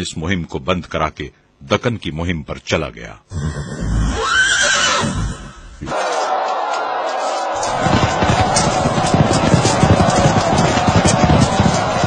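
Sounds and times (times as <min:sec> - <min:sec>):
horse whinnying: 0:03.3 - 0:05.8.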